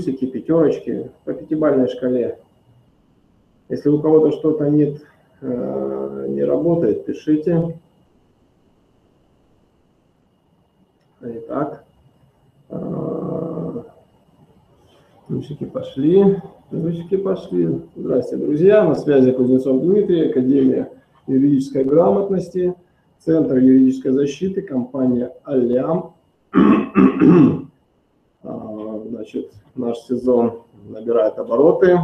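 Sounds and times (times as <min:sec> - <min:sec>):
man speaking: 0:00.0 - 0:02.4, 0:03.7 - 0:07.8, 0:11.2 - 0:11.8, 0:12.7 - 0:14.0, 0:15.3 - 0:26.2, 0:28.4 - 0:32.0
man's drawn-out hesitation sound: 0:12.7 - 0:14.0, 0:15.2 - 0:27.7
man clearing his throat: 0:26.5 - 0:27.7.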